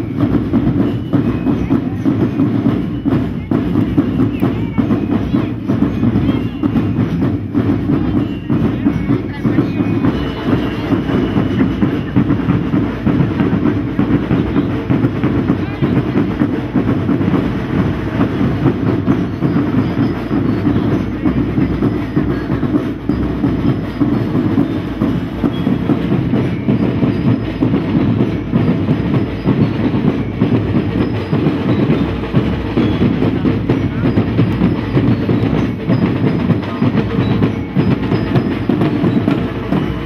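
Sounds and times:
snare drums playing parade beat: 0.0 - 40.0.

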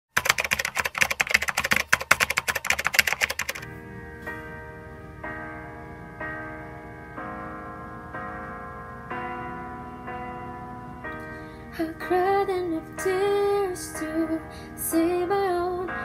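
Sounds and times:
keyboard typing clicks: 0.1 - 3.6
piano chords: 0.2 - 16.0.

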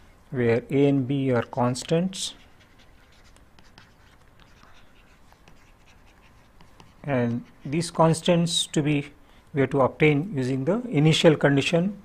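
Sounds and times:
pen scratching on paper: 2.3 - 8.0.

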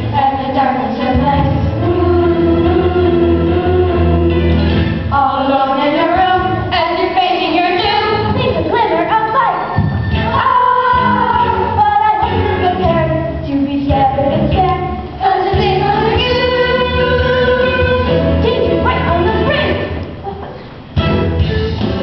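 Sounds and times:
musical accompaniment: 0.0 - 7.0, 7.8 - 22.0
children's chorus singing: 10.3 - 11.8, 15.2 - 18.4.

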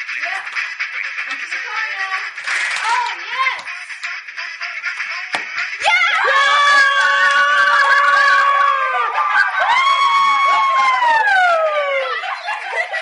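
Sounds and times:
girls laughing: 3.3 - 13.0
girls screaming: 5.8 - 12.9.

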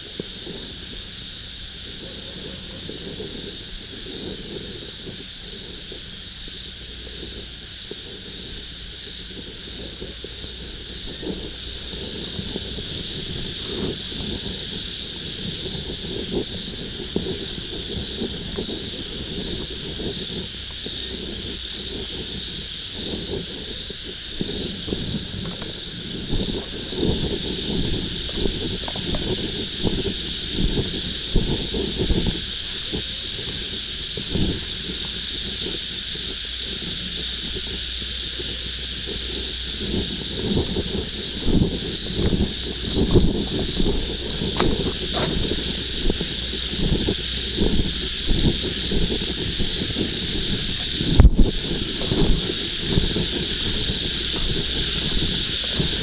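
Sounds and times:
bumps and rustling in vegetation: 0.0 - 56.0
night insects chorus: 0.0 - 56.0.

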